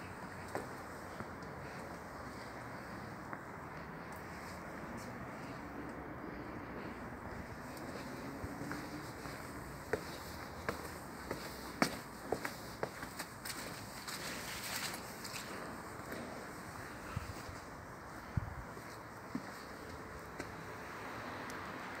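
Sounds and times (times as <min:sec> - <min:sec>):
footsteps on tiles and leaves: 0:07.2 - 0:17.5.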